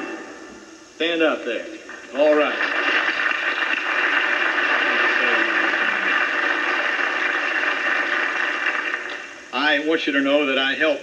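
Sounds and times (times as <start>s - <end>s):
audience applauding: 2.1s - 9.4s.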